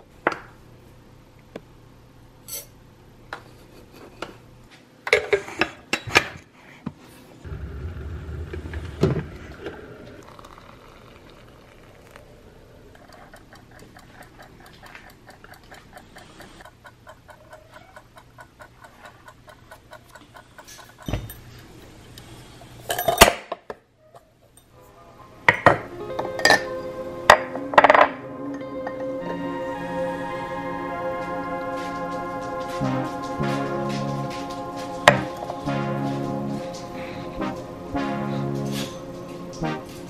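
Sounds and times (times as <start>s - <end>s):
electric kettle boiling: 7.4s - 16.7s
kitchen timer ticking: 13.0s - 21.7s
background music: 24.7s - 40.0s.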